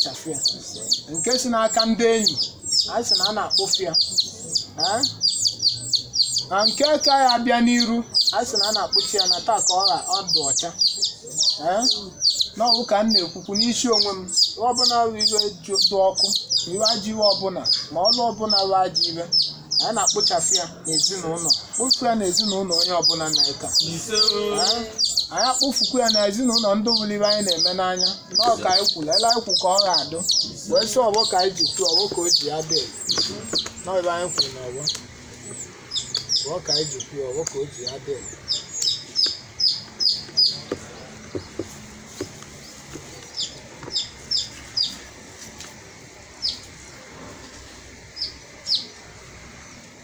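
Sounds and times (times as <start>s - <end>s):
man speaking: 0.0s - 5.2s, 6.5s - 10.9s, 11.5s - 35.0s, 36.3s - 38.6s
small bird chirping: 0.0s - 50.0s.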